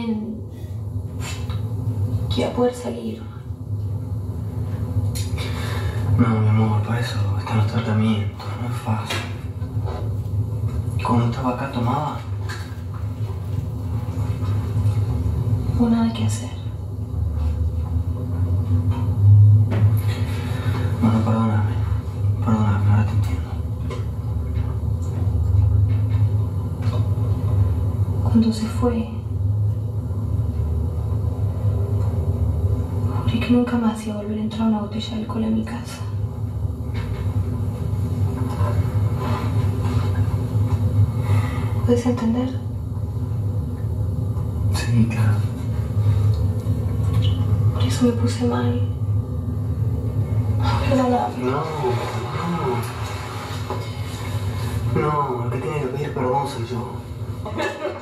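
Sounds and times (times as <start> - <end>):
low rumbling hum: 0.0 - 58.0.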